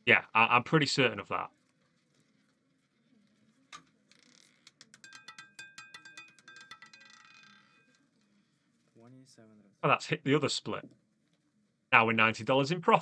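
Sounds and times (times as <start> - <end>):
roulette ball clattering on wheel: 3.7 - 8.3.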